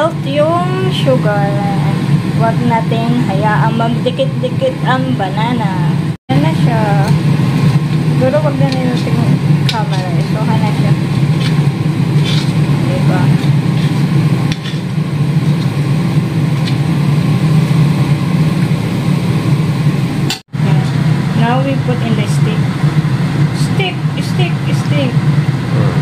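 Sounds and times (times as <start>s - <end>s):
kitchen fan humming: 0.0s - 26.0s
food frying in oil: 6.5s - 20.1s.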